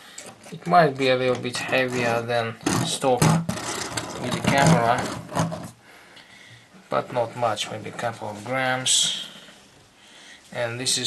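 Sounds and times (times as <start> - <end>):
man speaking: 0.5 - 3.4, 4.2 - 5.2, 6.9 - 9.4, 10.5 - 11.0.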